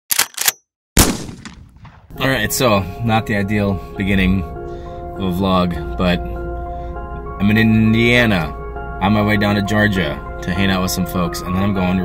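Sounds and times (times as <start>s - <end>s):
loud gunshot with echo: 1.0s - 2.2s.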